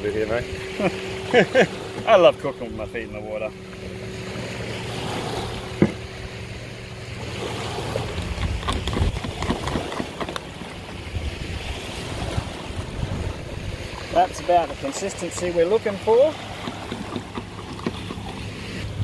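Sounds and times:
low steady hum: 0.0 - 19.0
small waves washing in: 0.0 - 19.0
wind on microphone: 7.4 - 15.8.

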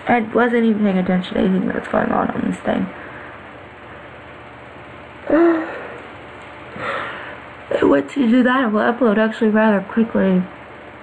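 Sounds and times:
woman humming briefly: 5.2 - 6.0
faint breath: 6.7 - 7.5.

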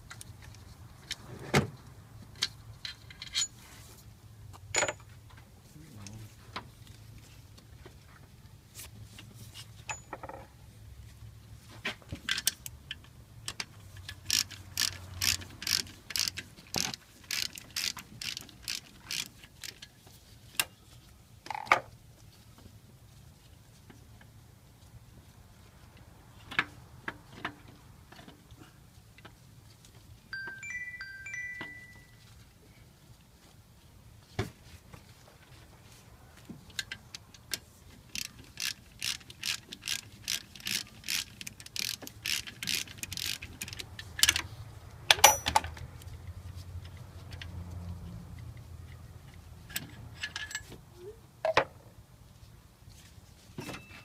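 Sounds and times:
ratcheting wrench clicking: 13.5 - 19.8, 38.1 - 44.4.

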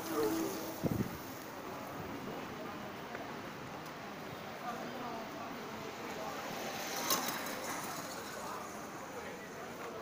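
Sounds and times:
motor scooter passing: 0.0 - 1.4, 5.8 - 10.0
distant voices: 0.0 - 10.0.

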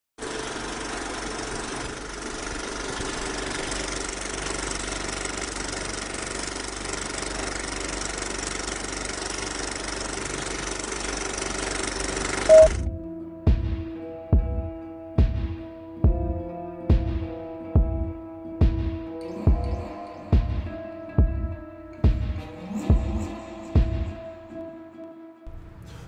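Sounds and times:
film projector whirring rattle: 0.2 - 12.8.

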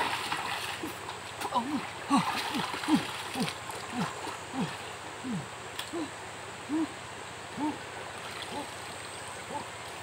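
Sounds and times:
river water rushing: 0.0 - 10.0
low hooting calls: 3.0 - 10.0.

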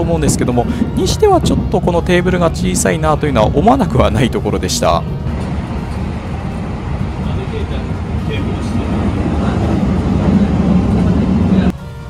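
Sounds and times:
train running rumble inside car: 0.0 - 12.0.

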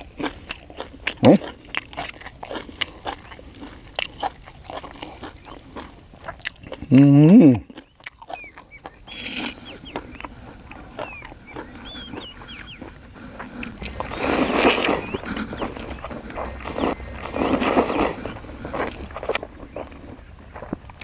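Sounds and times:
wet chewing: 0.0 - 21.0
person slurping noodles: 13.2 - 19.4.

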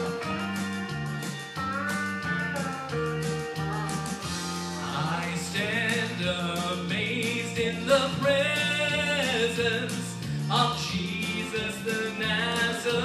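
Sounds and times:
instrumental gospel music: 0.0 - 13.0.

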